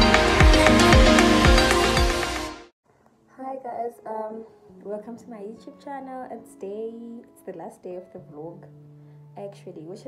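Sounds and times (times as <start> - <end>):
low background music tone: 0.0 - 10.0
woman talking sing-song: 3.3 - 8.7, 9.4 - 10.0.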